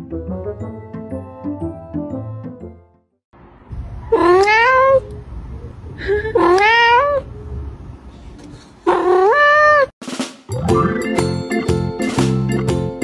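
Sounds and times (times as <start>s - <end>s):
cat meowing: 4.1s - 5.0s, 6.4s - 7.3s, 8.9s - 9.9s.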